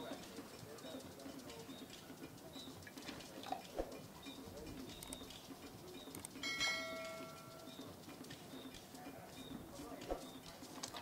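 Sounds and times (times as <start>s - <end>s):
metal pot ringing: 6.4s - 7.6s.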